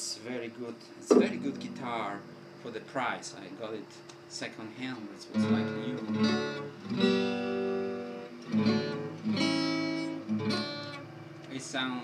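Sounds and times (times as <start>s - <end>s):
acoustic guitar strummed: 1.1s - 2.9s, 5.3s - 11.4s.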